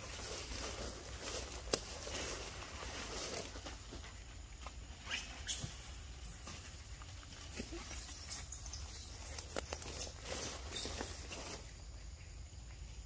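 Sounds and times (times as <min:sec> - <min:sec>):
dry leaves rustling: 0:00.0 - 0:12.2
monkeys squeaking: 0:05.0 - 0:11.2.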